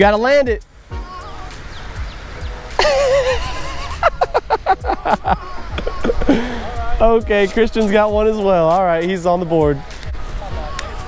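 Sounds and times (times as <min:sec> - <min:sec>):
background music: 0:00.0 - 0:11.0
man laughing: 0:02.8 - 0:07.1
wavering vocal call: 0:04.8 - 0:07.0.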